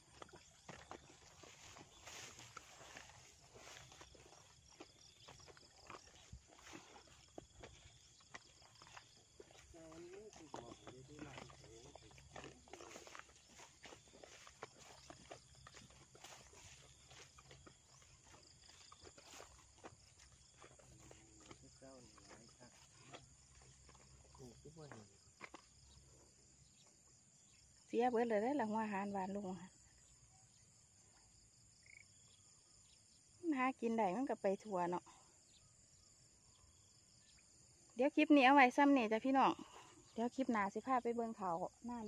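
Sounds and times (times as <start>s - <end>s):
footsteps through tall grass: 0.0s - 26.0s.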